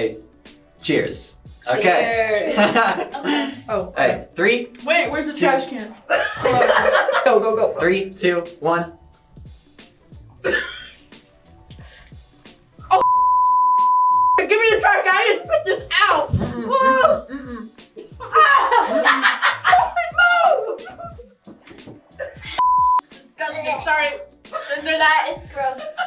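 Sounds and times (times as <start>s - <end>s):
voices exclaiming and talking: 0.8s - 8.9s, 14.4s - 21.3s, 23.3s - 26.0s
censor bleep: 13.0s - 14.4s, 22.6s - 23.1s.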